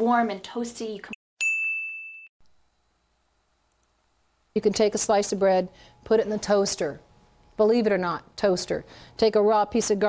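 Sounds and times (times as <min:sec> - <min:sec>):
bright ding chime: 0:01.4 - 0:02.3.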